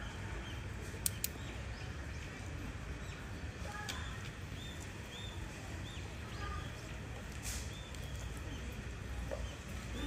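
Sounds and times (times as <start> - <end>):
sharp ticks: 1.0 - 1.4.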